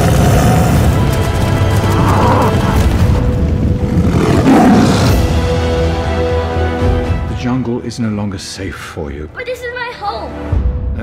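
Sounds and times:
music: 0.0 - 11.0
rising whoosh: 1.6 - 5.0.

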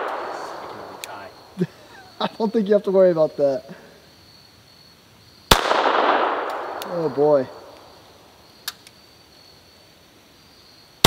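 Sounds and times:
faint outdoor ambience: 0.0 - 11.0
sharp small click: 8.6 - 9.0.

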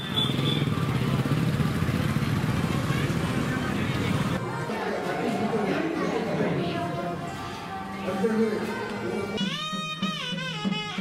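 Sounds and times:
people's voices: 2.1 - 9.5.

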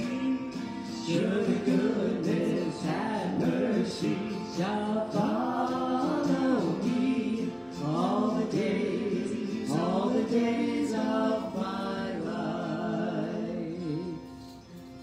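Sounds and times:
man and woman singing a hymn: 0.0 - 14.6
acoustic guitar: 0.0 - 15.0.

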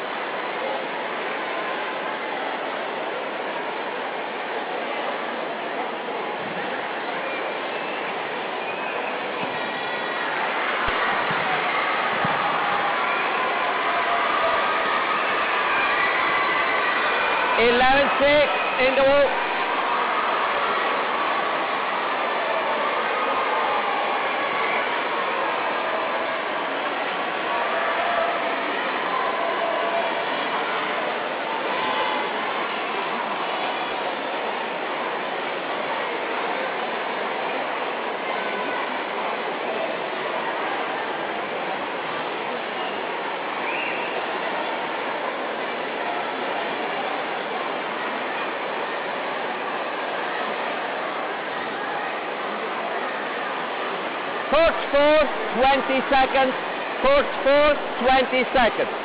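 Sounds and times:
crowd shouting: 0.0 - 59.0
crowd talking: 0.0 - 59.0.

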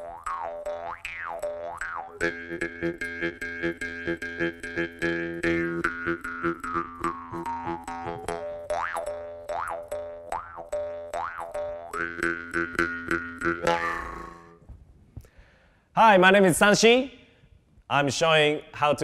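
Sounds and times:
jaw harp twanging: 0.0 - 14.6.

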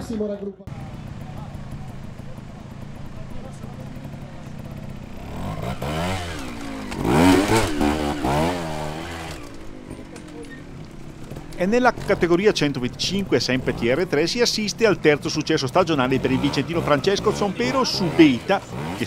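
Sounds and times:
motorcycle engine revving: 0.7 - 19.0.

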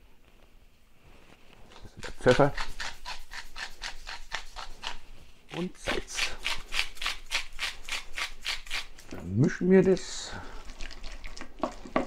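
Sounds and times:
pepper mill grinding: 1.7 - 5.0, 5.8 - 9.1.

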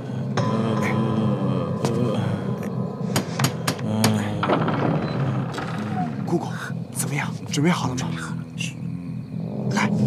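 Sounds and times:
low music score: 0.0 - 10.0.

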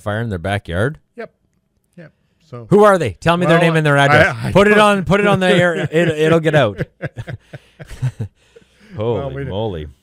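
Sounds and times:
man chuckling: 5.1 - 8.4.

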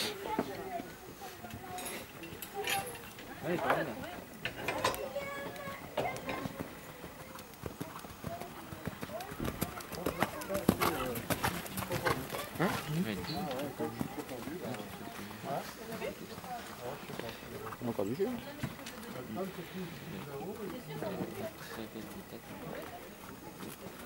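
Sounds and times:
horse hoofbeats on sand: 5.4 - 19.2.

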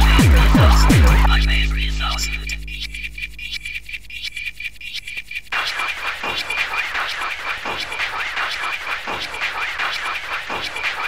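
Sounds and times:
steady high tone: 0.0 - 5.3
ticking hi-hat pattern: 0.0 - 11.0.

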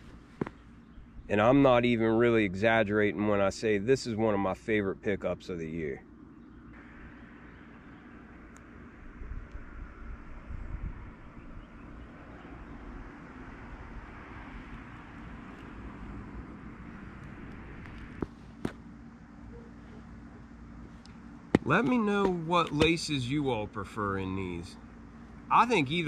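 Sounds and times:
low rumble and hiss: 0.0 - 26.0.

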